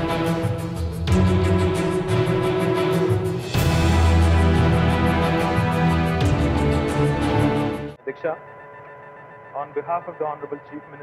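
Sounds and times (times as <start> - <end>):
news intro theme music: 0.0 - 11.0.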